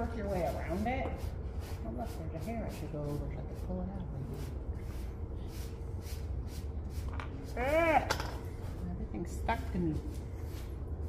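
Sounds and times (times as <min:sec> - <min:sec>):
low room hum: 0:00.0 - 0:11.0
woman's wordless exclamation: 0:07.5 - 0:08.2.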